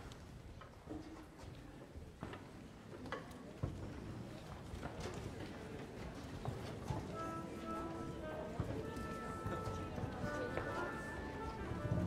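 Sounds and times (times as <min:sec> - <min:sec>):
low murmured talk: 0:00.7 - 0:12.0
footsteps on wooden stage: 0:06.4 - 0:12.0
soft held instrument notes: 0:07.0 - 0:12.0.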